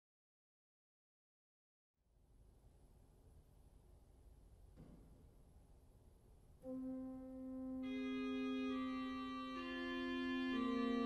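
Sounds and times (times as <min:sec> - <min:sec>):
bright organ voice in long notes: 0:06.6 - 0:11.0
held low organ note: 0:06.6 - 0:11.0.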